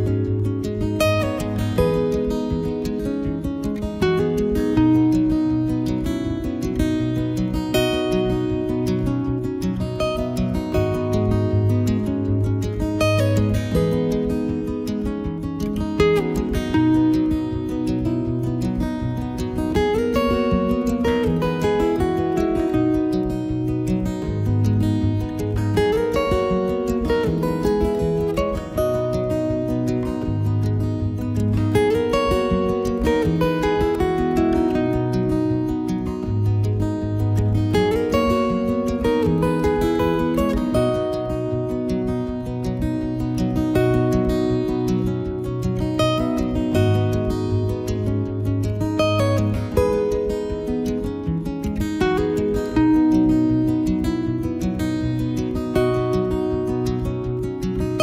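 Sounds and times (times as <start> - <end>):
strummed acoustic guitar music: 0.0 - 58.0.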